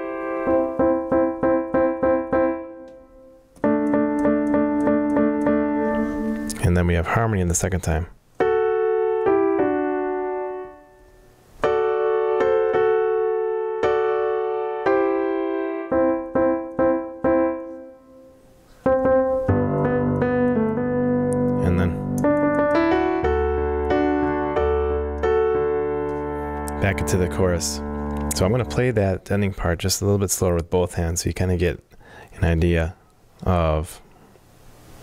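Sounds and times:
slow piano playing: 0.0 - 7.1, 8.4 - 29.3.

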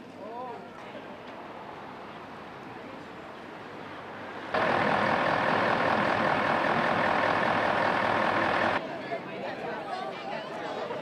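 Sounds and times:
loud steady mechanical noise: 4.5 - 8.8.

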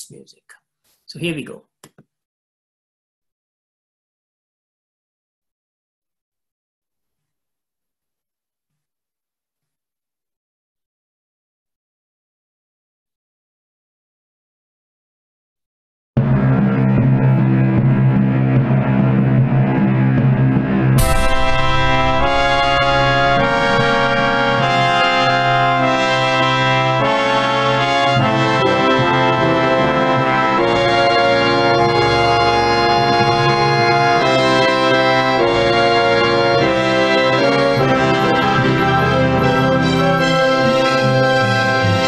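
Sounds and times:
orchestral overture with brass: 21.0 - 42.0.

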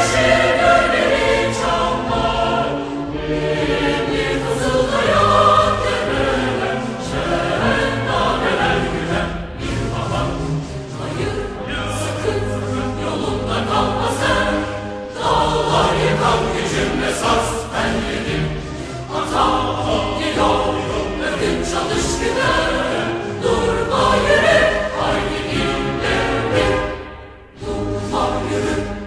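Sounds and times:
choir singing: 0.0 - 29.0.

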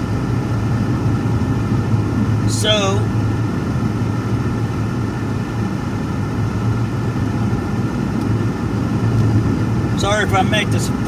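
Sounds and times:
car engine drone: 0.0 - 11.0
road noise inside car: 0.0 - 11.0.

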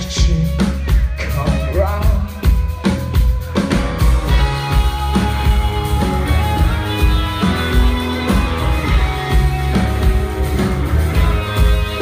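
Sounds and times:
bass guitar: 0.0 - 12.0
drums: 0.0 - 12.0
electric guitars playing chords: 0.0 - 12.0.

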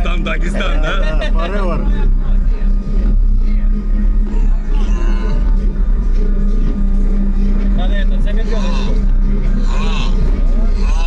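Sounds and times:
deep bass from car audio: 0.0 - 11.0.

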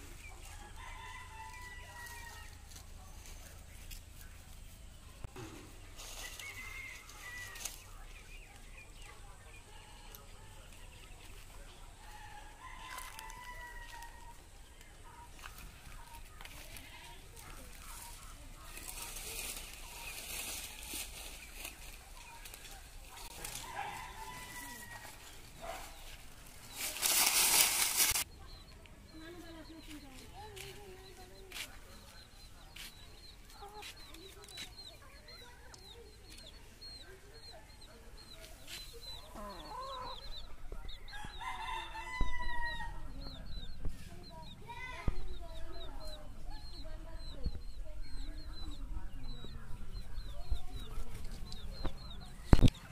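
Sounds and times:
chicks peeping: 0.0 - 52.9
crackles of twigs stepped on: 5.3 - 8.0, 12.1 - 28.3
rooster crowing: 23.6 - 25.2, 41.1 - 43.0.

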